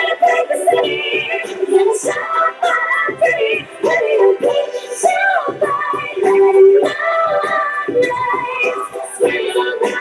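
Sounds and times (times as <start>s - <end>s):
backing track: 0.0s - 10.0s
woman singing pop song: 0.0s - 10.0s.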